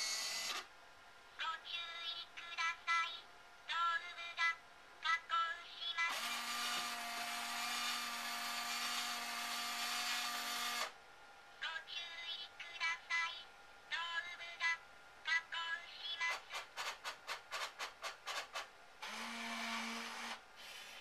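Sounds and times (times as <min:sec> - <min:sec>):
mechanical whir with low hum: 0:00.0 - 0:01.4, 0:02.4 - 0:16.8, 0:17.4 - 0:21.0
synthetic voice speaking: 0:01.4 - 0:06.1, 0:11.6 - 0:16.6.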